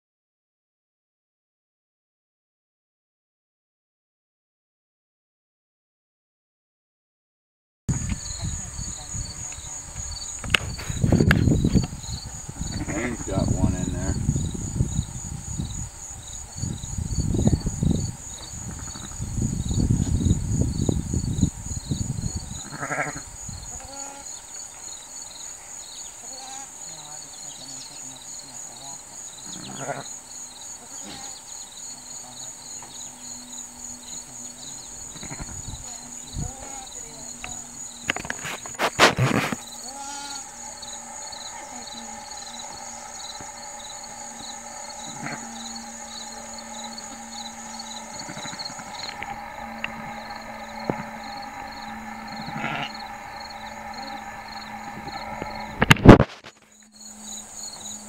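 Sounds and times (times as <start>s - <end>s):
insects chirping: 7.9s - 58.0s
sheep calling softly: 12.7s - 14.0s, 22.6s - 24.4s, 26.2s - 26.8s, 29.4s - 30.1s, 30.8s - 31.4s, 39.8s - 40.5s, 45.0s - 46.5s, 48.1s - 49.4s, 52.4s - 53.0s
loud rustle: 34.8s - 56.9s.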